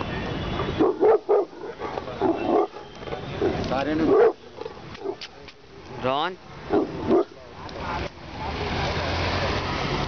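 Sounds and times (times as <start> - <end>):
dog barking: 0.8 - 5.2, 6.7 - 7.4.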